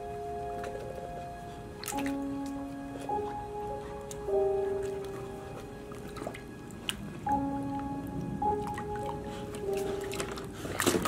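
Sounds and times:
background music with held notes: 0.0s - 11.0s
water dripping and splashing: 0.0s - 11.0s.

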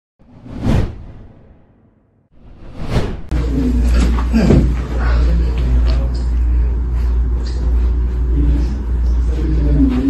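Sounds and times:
whoosh sound effect: 0.2s - 3.4s.

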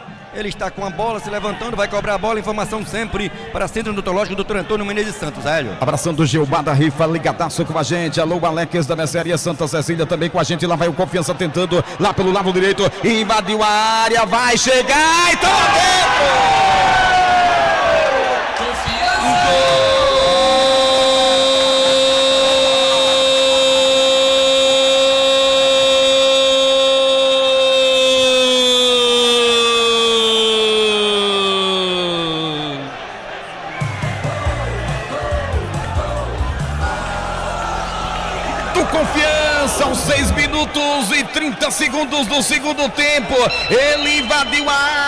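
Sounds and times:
commentator shouting goal: 10.0s - 17.2s, 18.6s - 33.0s, 38.6s - 45.0s
music with pulsing beat: 33.8s - 37.2s.

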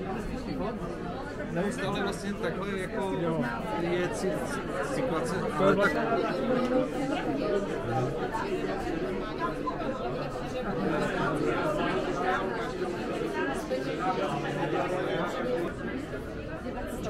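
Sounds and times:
chatter of many people: 0.0s - 17.0s.

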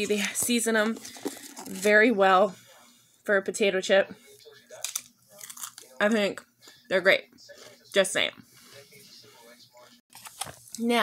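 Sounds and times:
crunching potato chip: 4.8s - 5.9s.

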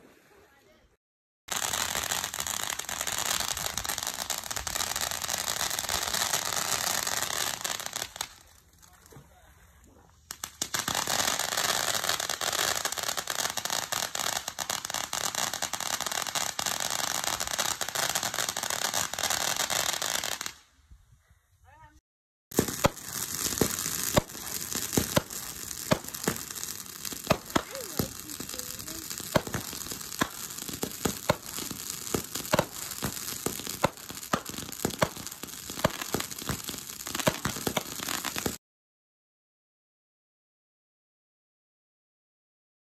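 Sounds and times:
fireworks crackling: 1.5s - 9.4s, 10.3s - 20.7s, 22.5s - 38.6s
fireworks sharp pops: 10.2s - 20.6s, 22.5s - 38.6s.

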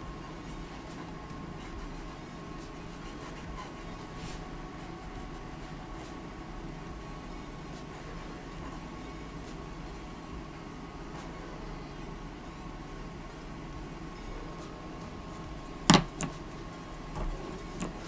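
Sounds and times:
faint steady whine: 0.0s - 18.0s
low room hum: 0.0s - 18.0s
pen knocking on page: 15.8s - 16.4s, 17.2s - 18.0s.

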